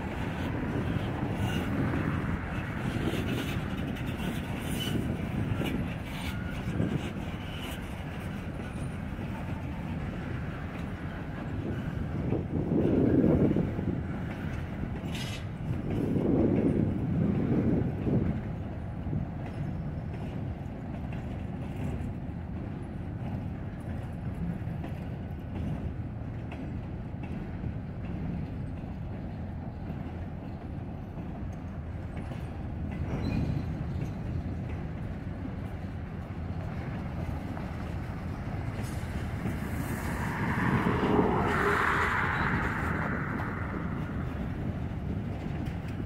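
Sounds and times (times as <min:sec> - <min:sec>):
freight train cars rolling past: 0:00.0 - 0:46.0.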